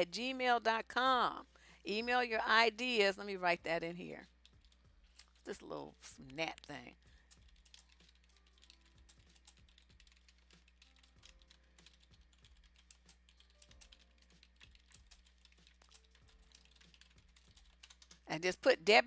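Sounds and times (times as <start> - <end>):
keyboard typing: 4.2 - 18.7.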